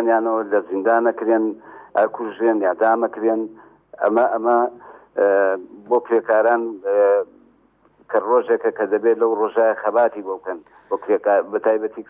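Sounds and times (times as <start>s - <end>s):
man speaking: 0.0s - 7.4s, 8.1s - 12.0s.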